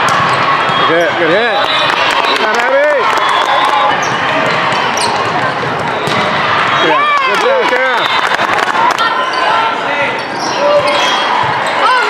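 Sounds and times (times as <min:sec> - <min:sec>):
distant voices in a hall: 0:00.0 - 0:12.0
ball hits and bounces: 0:04.0 - 0:06.4
shouted voices: 0:06.3 - 0:12.0.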